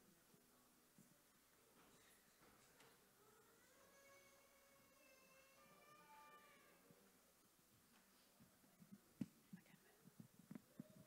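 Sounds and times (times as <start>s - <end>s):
faint high pitched tone: 3.2s - 7.0s.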